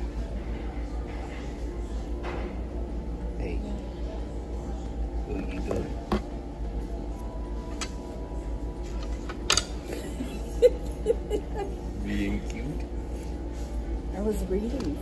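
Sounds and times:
restaurant background music: 0.0 - 15.0.

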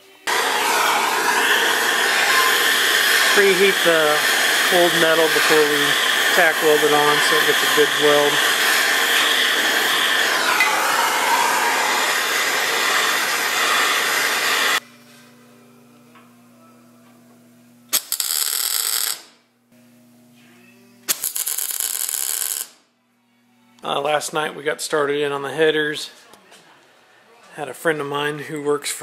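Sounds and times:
hand torch hissing: 0.3 - 14.8
welding arc crackling buzz: 0.3 - 14.8, 17.9 - 19.4, 21.1 - 22.8.

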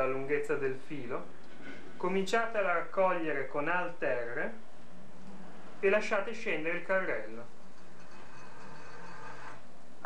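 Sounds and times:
faint low hum: 0.0 - 10.0
steady hiss: 0.0 - 10.0.

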